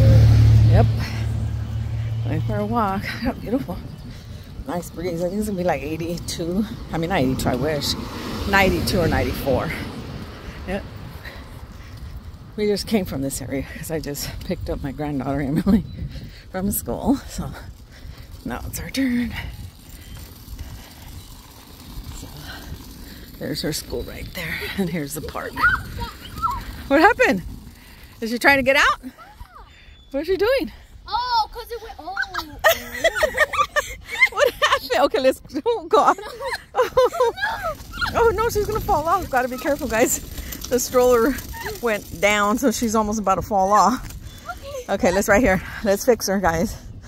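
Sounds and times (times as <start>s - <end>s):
stroller wheels rolling: 0.0s - 47.0s
wind buffeting microphone: 0.0s - 47.0s.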